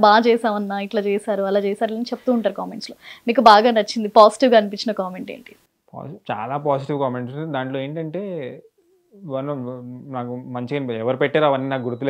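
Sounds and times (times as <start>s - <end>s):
man talking: 6.0s - 12.0s.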